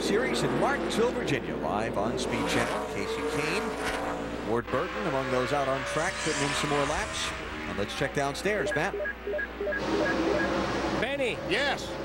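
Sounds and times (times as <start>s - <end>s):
race car engine: 0.0s - 12.0s.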